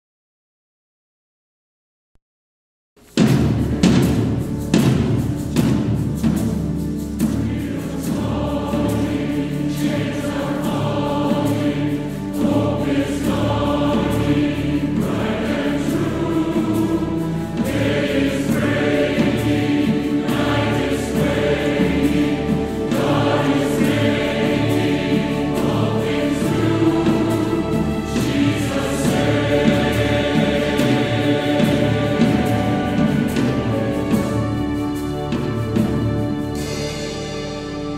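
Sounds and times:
symphony orchestra playing: 3.1 - 37.9
choir singing a hymn: 5.0 - 37.9.

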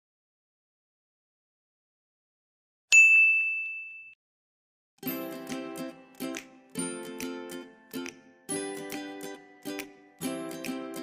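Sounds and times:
bright bell ding: 2.9 - 4.2.

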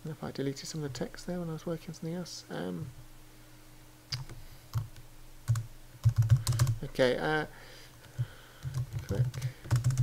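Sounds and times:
computer keyboard typing: 4.2 - 6.8, 8.1 - 10.0.

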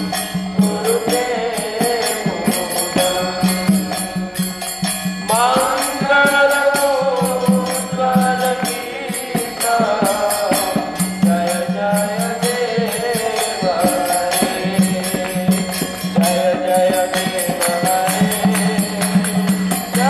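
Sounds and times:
jingling metallic percussion: 0.0 - 20.0
sung chant: 0.0 - 20.0.

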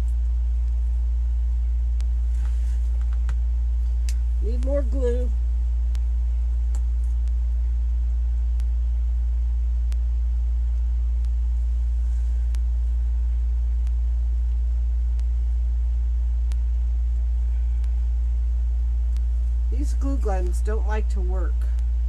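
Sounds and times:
loud steady low hum: 0.0 - 22.0
faint clicks: 5.9 - 7.4, 13.7 - 15.4, 16.4 - 16.7.

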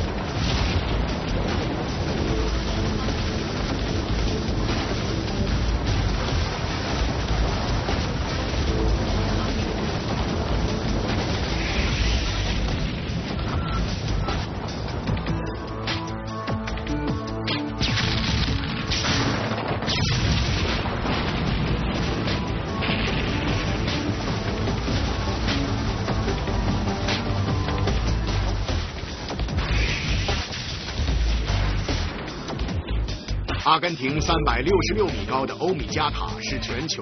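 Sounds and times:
concrete bridge collapsing: 0.0 - 15.4, 17.8 - 36.6
blast and falling debris rumble: 0.0 - 15.9, 17.8 - 35.9
background music: 0.0 - 37.0.

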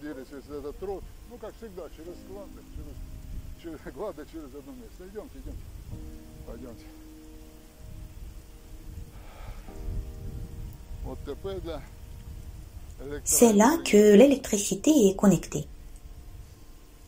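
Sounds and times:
wind rumbling on microphone: 0.2 - 14.8, 15.7 - 17.0.

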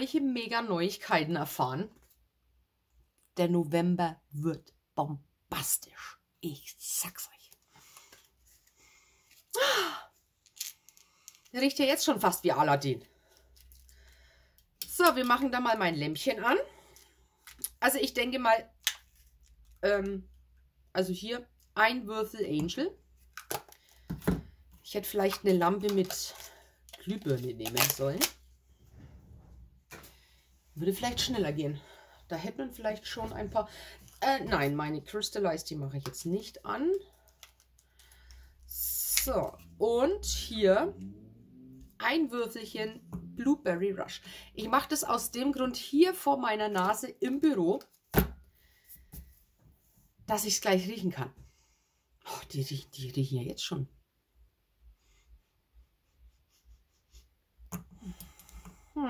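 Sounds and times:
woman speaking: 0.0 - 2.0, 3.4 - 7.6, 9.6 - 10.1, 11.5 - 13.1, 14.8 - 16.8, 17.8 - 18.7, 19.8 - 20.3, 20.9 - 23.0, 24.8 - 26.4, 27.0 - 28.3, 30.8 - 37.1, 38.7 - 41.1, 41.8 - 47.8, 50.3 - 51.4, 52.3 - 53.9.

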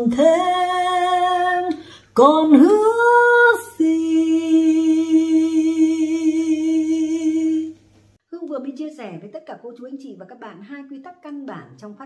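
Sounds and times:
woman singing long note: 0.0 - 7.8.

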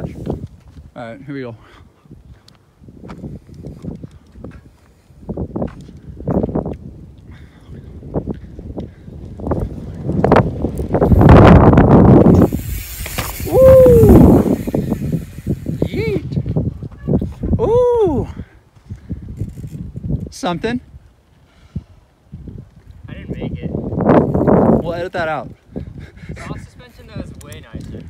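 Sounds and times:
bike tyres crackling over dirt: 0.0 - 1.6, 2.2 - 26.1, 26.8 - 28.0
person exclaiming: 13.4 - 14.5, 15.8 - 16.3, 17.6 - 18.4.

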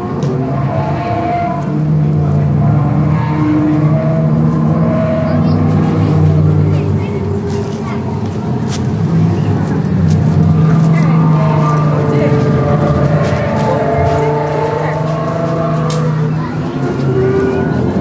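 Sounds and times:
indistinct voices: 0.0 - 18.0
low droning hum: 0.0 - 18.0.

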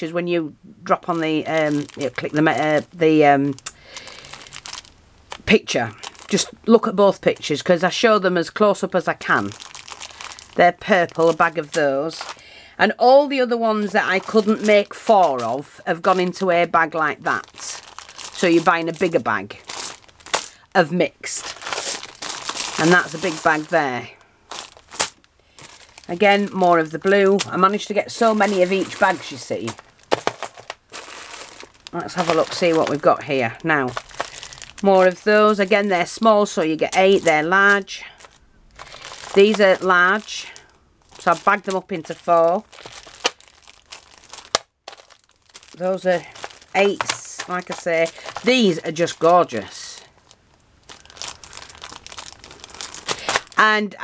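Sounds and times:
plastic bag crinkling: 0.8 - 54.0.

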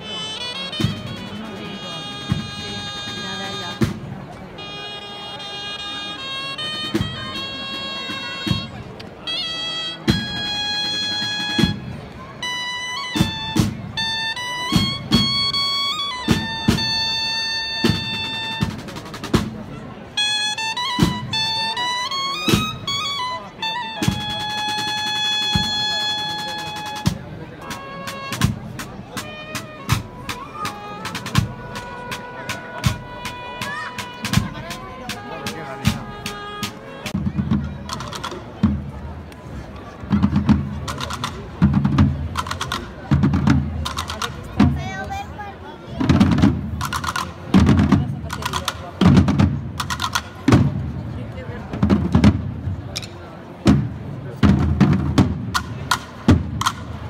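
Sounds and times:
brass band playing a march: 0.0 - 38.7
drum strokes: 0.1 - 39.1, 40.0 - 45.3, 46.0 - 57.0.

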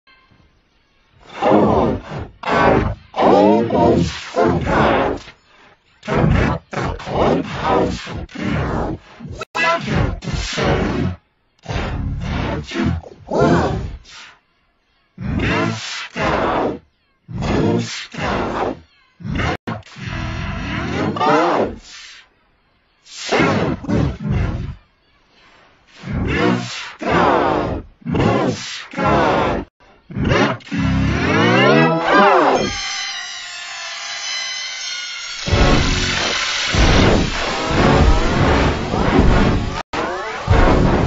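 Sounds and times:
deep distorted roaring voice: 1.2 - 5.3, 6.0 - 14.1, 15.2 - 22.0, 23.3 - 24.8, 26.0 - 32.8, 35.4 - 41.0.

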